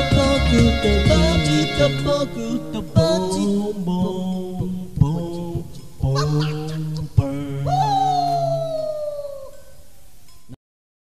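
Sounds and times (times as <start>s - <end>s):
person imitating dog howl: 6.1s - 7.0s, 7.6s - 9.7s.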